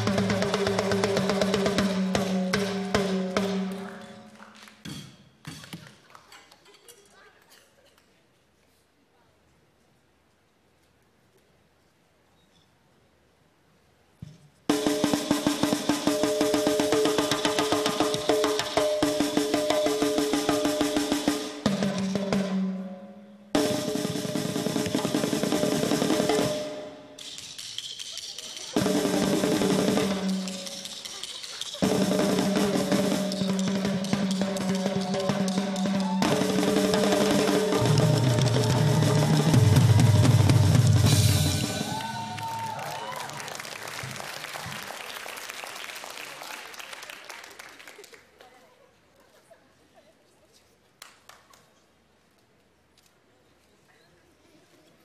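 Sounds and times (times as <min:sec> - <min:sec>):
snare and tenor drums: 0:00.0 - 0:06.0, 0:14.7 - 0:42.3.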